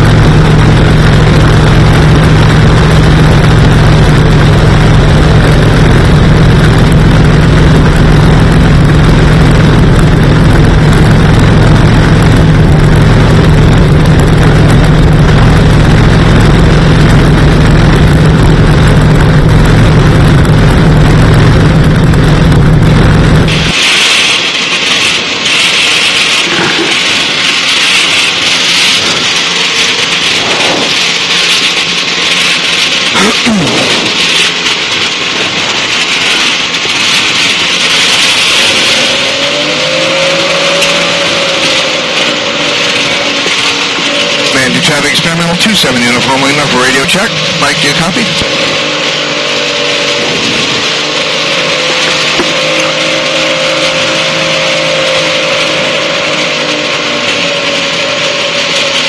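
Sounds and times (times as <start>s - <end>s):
wavering rising and falling tone: 0.0s - 26.1s, 36.4s - 59.0s
aircraft engine running: 0.0s - 59.0s.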